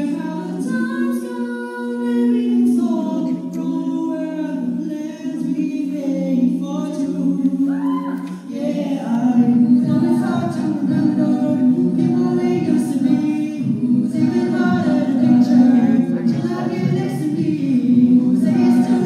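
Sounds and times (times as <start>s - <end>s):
a cappella group singing: 0.0s - 19.0s.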